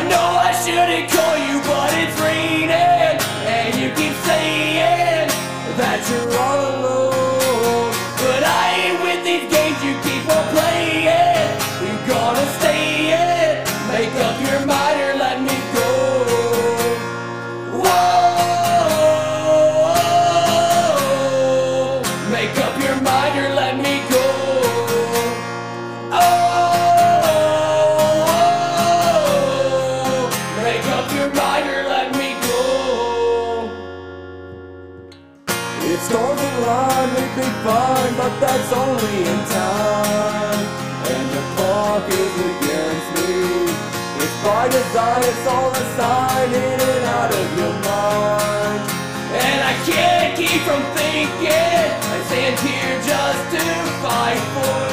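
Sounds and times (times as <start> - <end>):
man singing: 0.0 - 34.0, 35.7 - 54.9
strummed acoustic guitar: 0.0 - 54.9.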